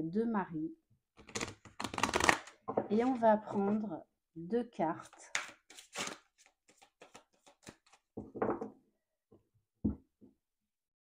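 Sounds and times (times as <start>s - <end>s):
card deck shuffled by hand: 1.2s - 3.2s, 5.0s - 8.0s
deck knocking on table: 8.2s - 8.7s.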